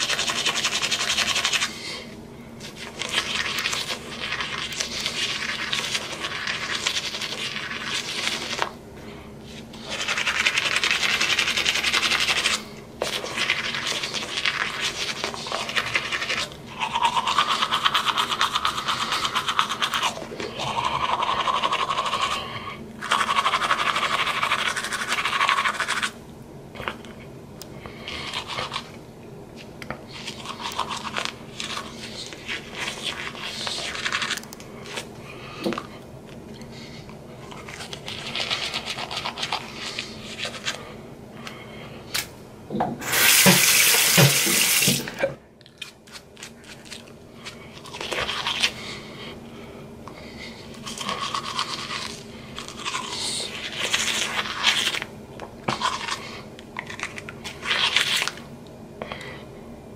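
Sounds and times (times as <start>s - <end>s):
toothbrush scrubbing teeth: 0.0s - 2.0s, 2.6s - 8.8s, 9.5s - 26.2s, 27.9s - 29.0s, 29.6s - 35.1s, 36.8s - 40.8s, 43.1s - 49.1s, 50.2s - 58.4s.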